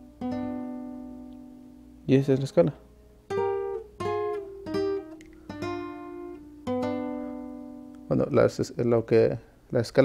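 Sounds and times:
classical guitar plucked double-stops: 3.3s - 8.1s.

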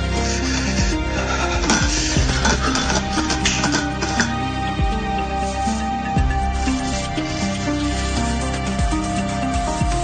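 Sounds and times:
low bass: 0.0s - 10.0s.

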